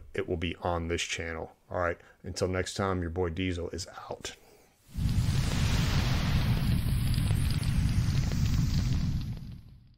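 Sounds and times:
low rumble of flame: 4.9 - 9.9.

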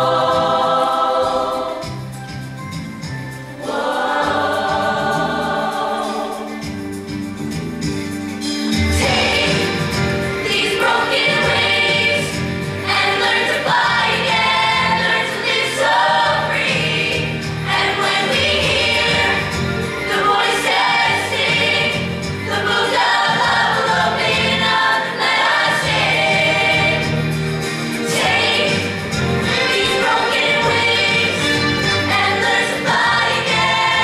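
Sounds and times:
choir singing in harmony: 0.0 - 7.2, 8.4 - 34.0.

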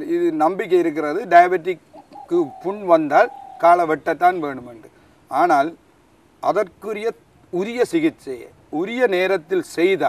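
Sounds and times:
man speaking: 0.0 - 5.8, 6.4 - 10.0
bird calling single note: 1.9 - 4.0.

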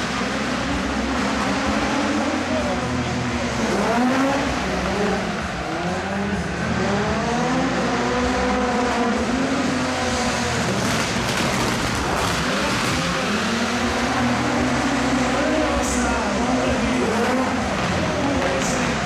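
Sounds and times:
race car engine revving: 0.0 - 19.0.

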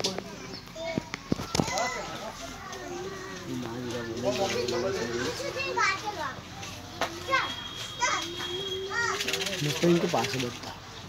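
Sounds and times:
children chattering and shouting: 0.0 - 11.0.

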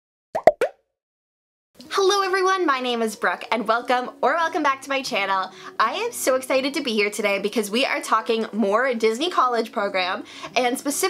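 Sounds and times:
woman speaking: 1.9 - 11.0.

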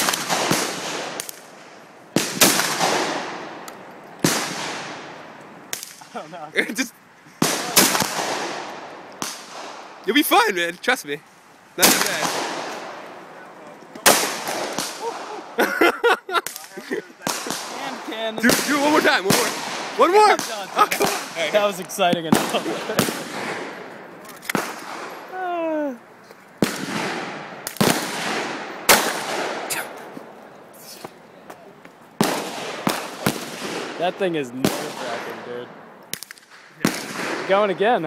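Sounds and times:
voices: 4.8 - 9.2, 10.0 - 26.6, 29.7 - 32.2, 33.9 - 35.8
gunshot with echo: 14.0 - 15.4, 26.6 - 29.9.

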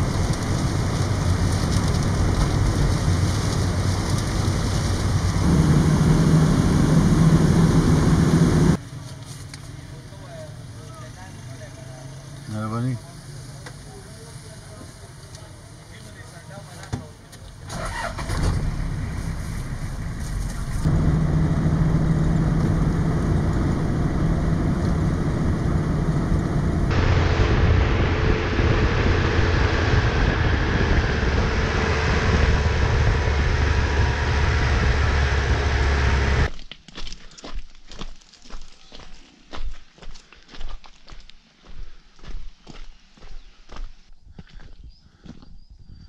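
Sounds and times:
vehicle engine and tyres rumbling: 0.0 - 36.6
wind rushing: 22.8 - 36.5.

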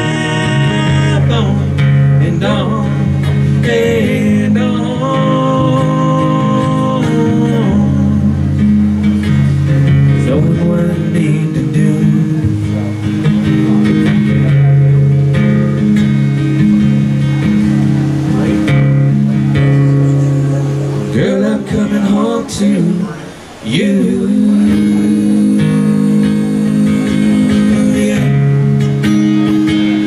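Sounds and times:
acoustic guitar strumming chords: 0.0 - 30.0.

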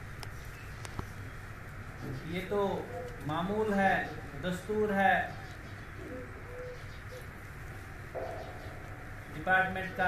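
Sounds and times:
dove cooing: 2.7 - 4.4, 5.2 - 9.3.

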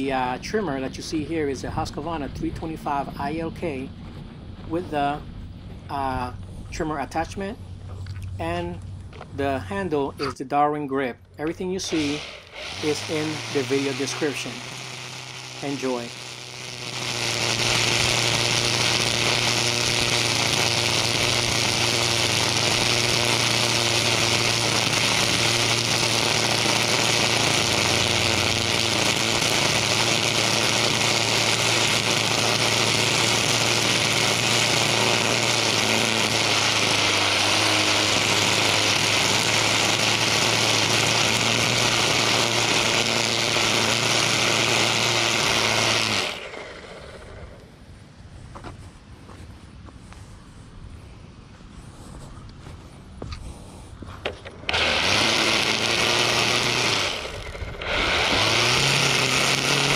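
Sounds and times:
trimmer line striking concrete: 11.1 - 47.7, 54.1 - 59.9
string trimmer running: 11.5 - 47.8, 54.2 - 59.9.

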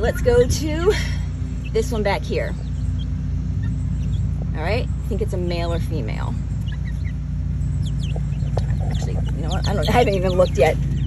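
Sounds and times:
chicks peeping: 0.0 - 11.0
steady low hum: 0.0 - 11.0.

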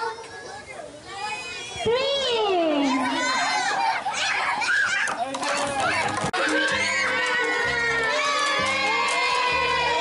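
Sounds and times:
children shouting and cheering: 0.0 - 10.0.

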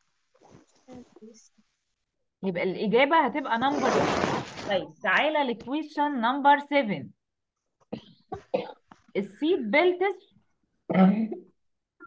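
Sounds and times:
person coughing: 8.0 - 8.8.

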